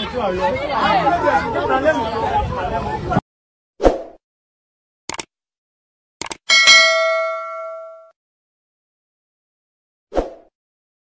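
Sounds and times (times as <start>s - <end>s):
notification bell ding: 6.5s - 8.1s.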